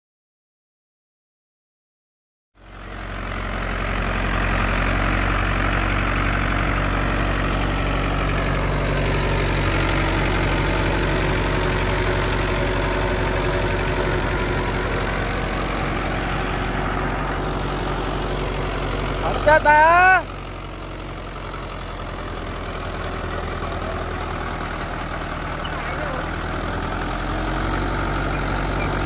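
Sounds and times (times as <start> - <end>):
tractor diesel engine under load: 2.6 - 29.0
rotavator churning soil: 22.4 - 29.0.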